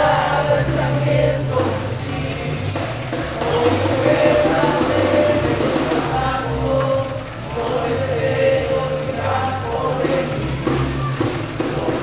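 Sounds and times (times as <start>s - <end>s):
bugles holding notes: 0.0s - 12.0s
drums: 0.0s - 12.0s.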